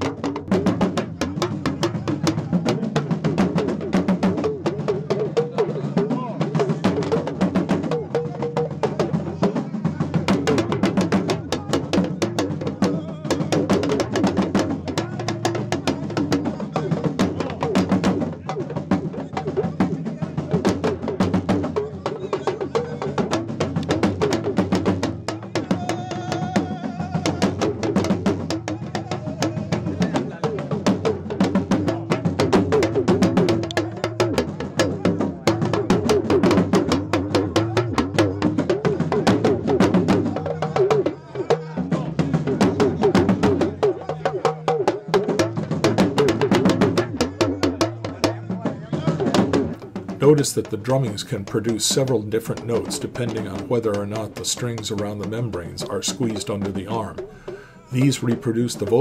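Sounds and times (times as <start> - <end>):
crowd voices: 0.0 - 59.0
rapid drumming: 0.0 - 59.0.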